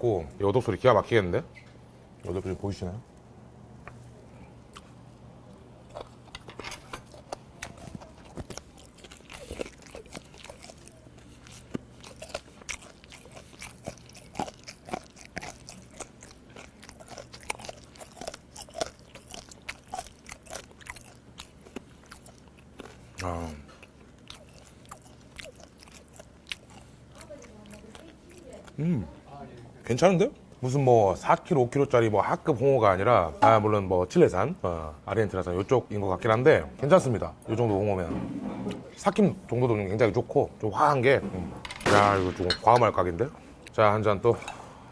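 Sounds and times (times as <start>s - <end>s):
crunchy chewing: 4.0s - 29.6s.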